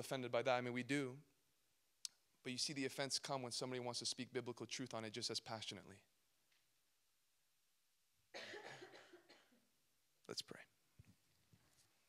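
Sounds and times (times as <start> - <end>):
man coughing into microphone: 8.4 - 9.6.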